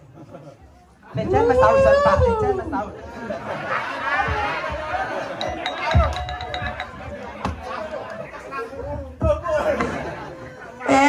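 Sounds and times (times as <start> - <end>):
talking and chatter: 0.4 - 11.0.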